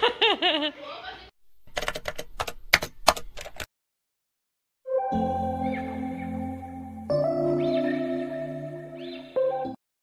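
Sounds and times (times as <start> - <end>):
keyboard typing clicks: 1.7 - 3.7.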